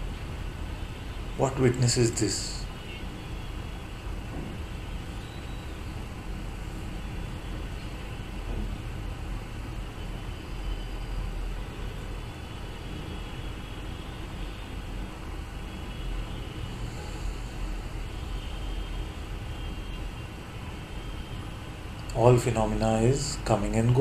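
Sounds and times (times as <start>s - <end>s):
low rumble and hiss: 0.0s - 24.0s.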